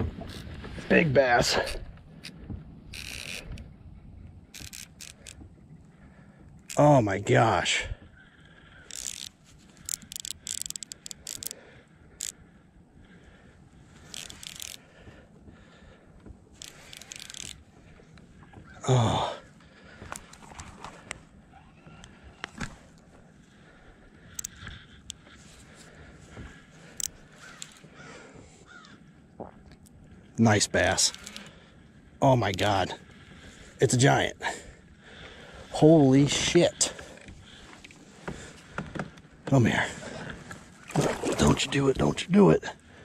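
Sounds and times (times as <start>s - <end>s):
fishing reel clicking: 2.2s - 3.6s, 4.5s - 5.4s, 8.8s - 11.6s, 12.2s - 12.4s, 14.0s - 14.8s, 16.6s - 17.6s, 24.3s - 25.2s, 26.9s - 27.8s, 30.9s - 31.6s.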